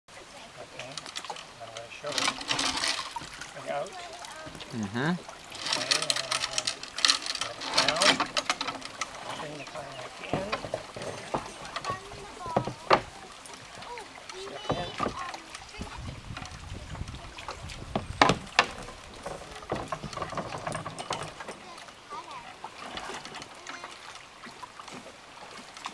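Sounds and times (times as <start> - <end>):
water splashing and trickling: 0.1 - 25.9
knocks and creaks on wood: 4.3 - 21.9.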